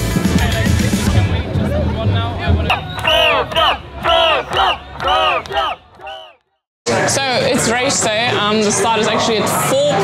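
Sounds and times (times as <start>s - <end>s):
man shouting through a megaphone: 2.4s - 6.3s
crowd chanting: 2.7s - 6.6s.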